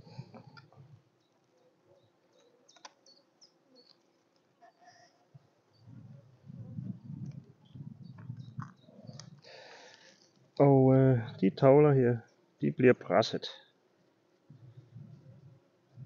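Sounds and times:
faint clicks: 2.3s - 3.1s, 8.1s - 10.6s.

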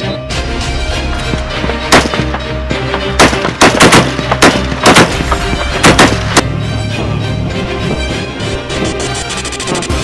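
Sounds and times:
background music: 0.0s - 10.0s
machine gun shots: 3.2s - 5.2s.

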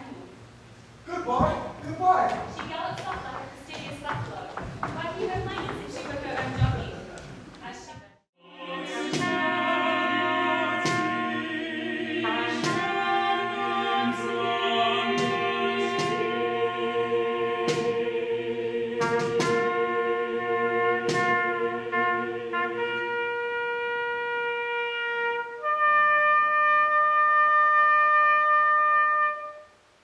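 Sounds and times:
choir holding a chord: 8.4s - 25.2s
trumpet playing held notes: 8.8s - 18.1s, 19.0s - 29.8s.

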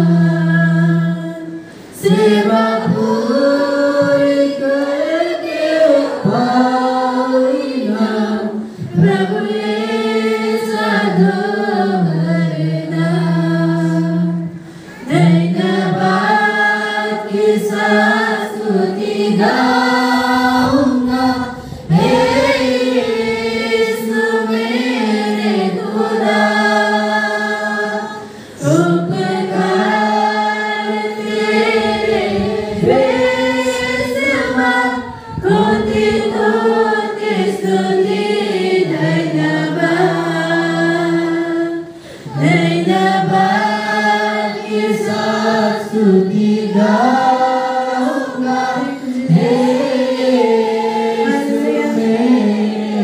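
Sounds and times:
group singing worship song: 0.0s - 53.0s
woman singing into microphone: 17.7s - 24.8s, 31.6s - 37.8s.

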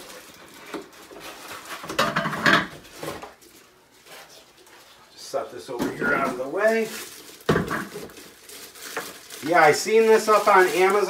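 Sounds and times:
plastic wrapping rustling: 0.0s - 11.0s.

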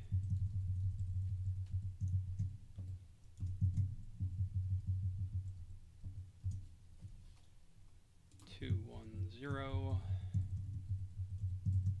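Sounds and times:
dull low thumps: 3.5s - 6.7s, 8.7s - 12.0s.

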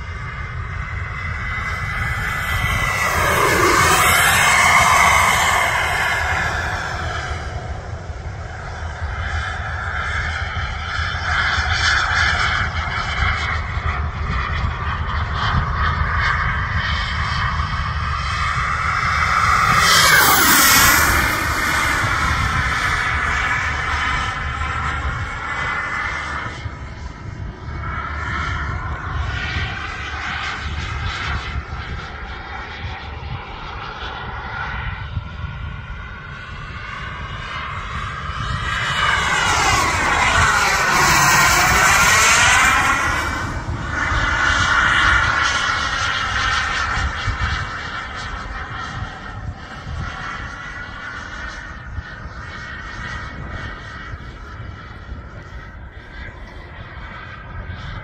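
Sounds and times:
model jet engine whine: 0.0s - 58.0s.

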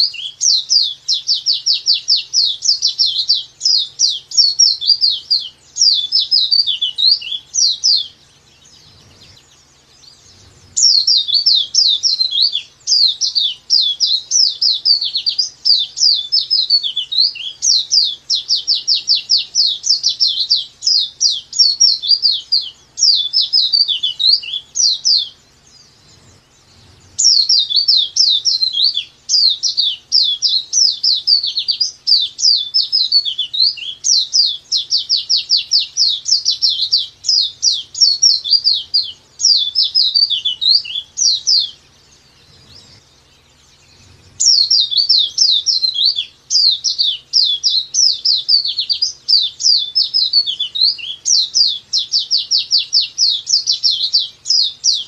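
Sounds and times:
bird singing high sharp chirps: 0.0s - 55.0s.

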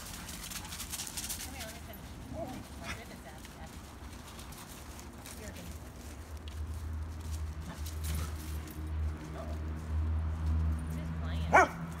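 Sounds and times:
dog yipping: 11.5s - 11.8s.

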